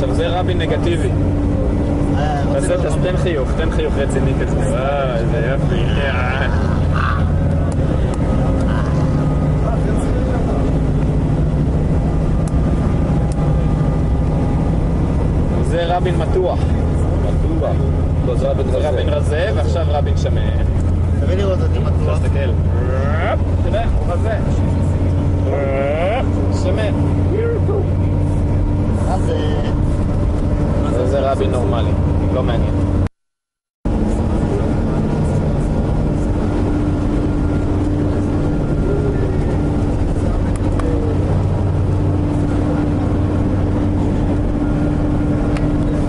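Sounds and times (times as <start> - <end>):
voices: 0.0 - 14.7, 15.4 - 29.8, 33.9 - 46.0
bus engine drone: 0.0 - 33.1, 33.9 - 46.0
road noise: 0.0 - 33.1, 33.9 - 46.0.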